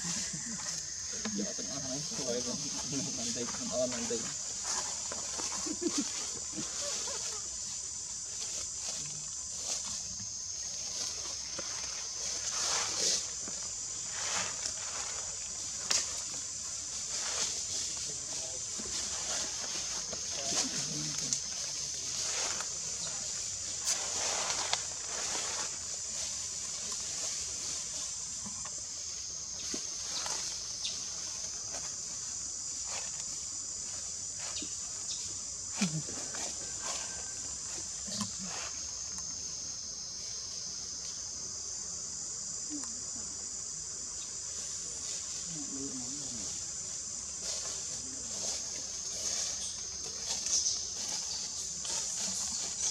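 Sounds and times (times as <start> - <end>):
high-pitched insect drone: 0.0 - 41.8, 42.4 - 52.9.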